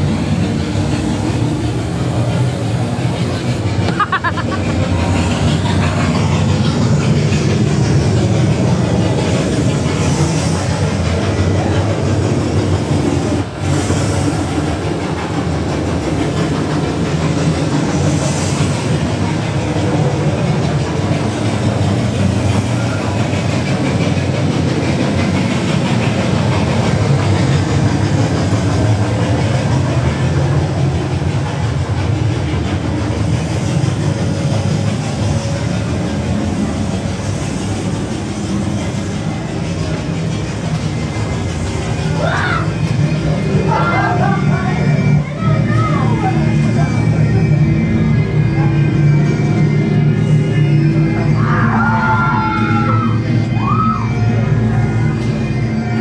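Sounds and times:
rumbling and clattering effects: 0.0 - 56.0.

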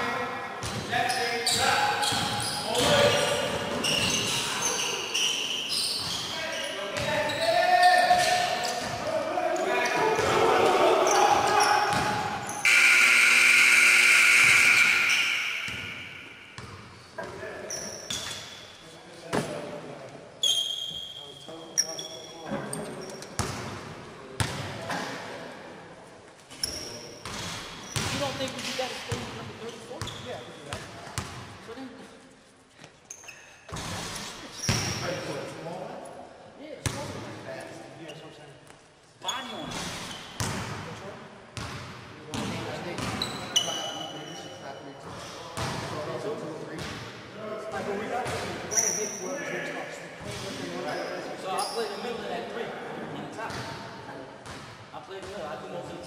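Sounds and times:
sneaker squeaks: 0.6 - 10.0, 11.0 - 19.0, 20.4 - 23.6, 26.5 - 31.4, 32.8 - 35.3, 38.0 - 38.6, 39.2 - 40.6, 41.6 - 45.9, 48.3 - 49.6, 50.2 - 52.2
people shouting: 9.9 - 12.5
loud steady buzz: 12.6 - 15.9
basketball bouncing on gym floor: 40.4 - 40.8.

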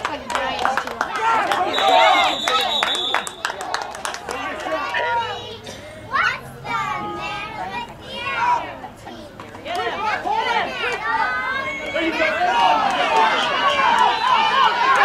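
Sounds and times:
other voices: 0.0 - 15.0
children shouting: 1.2 - 3.5, 4.6 - 15.0
steady high whistle tone: 1.7 - 3.5.

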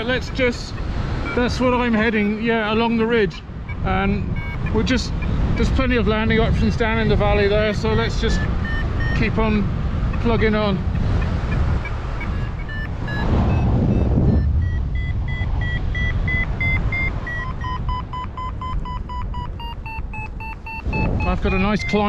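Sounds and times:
variometer electronic beeps: 0.0 - 22.0
wind rumbling on microphone: 0.0 - 22.0.

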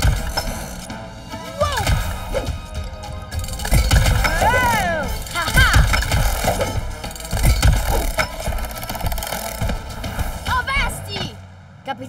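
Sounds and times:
robotic claw arm clanking: 0.0 - 1.0, 1.6 - 10.5
cartoon action music: 0.0 - 11.4.

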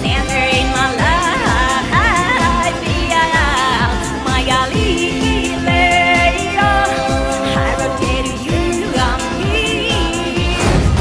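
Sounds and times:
woman singing lead vocal: 0.0 - 10.6
steady kick-drum beat: 0.0 - 11.0
band playing: 9.6 - 11.0.

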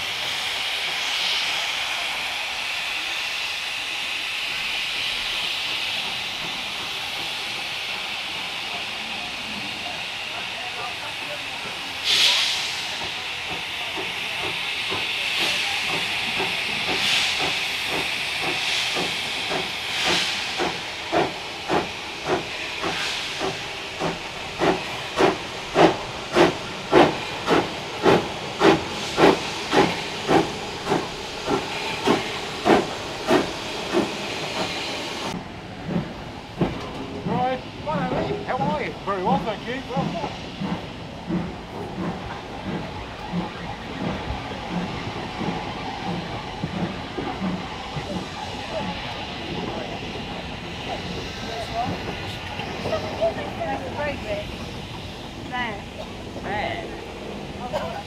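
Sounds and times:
loud steam burst: 0.0 - 35.4
steam locomotive hissing: 0.0 - 58.0
locomotive chuffing beat: 0.1 - 58.0.

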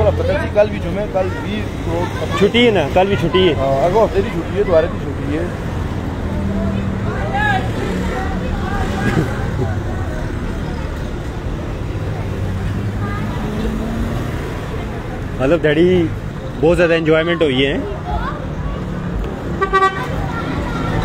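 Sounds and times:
cars and vans driving past: 0.0 - 21.0.

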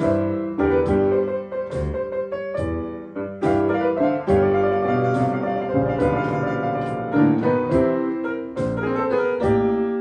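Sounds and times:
player piano melody with chords: 0.0 - 10.0.

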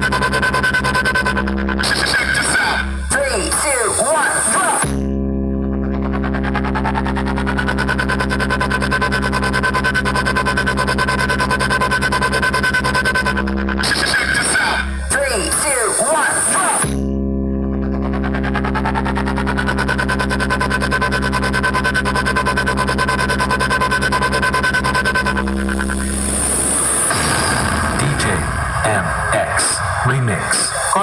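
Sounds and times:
buzzing bass note with wobble: 0.0 - 31.0
noisy electronic music with voices: 0.0 - 31.0
spoken voice sample: 1.8 - 5.0, 13.8 - 17.0, 27.9 - 31.0.

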